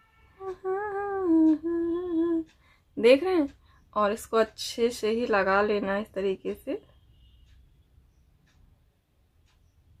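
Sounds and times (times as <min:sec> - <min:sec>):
woman humming: 0:00.4 - 0:02.5.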